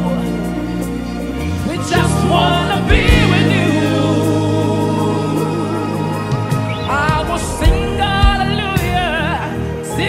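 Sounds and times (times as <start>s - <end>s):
backing vocals: 0.0s - 10.0s
sustained instrumental accompaniment: 0.0s - 10.0s
drum hit: 6.6s - 9.2s.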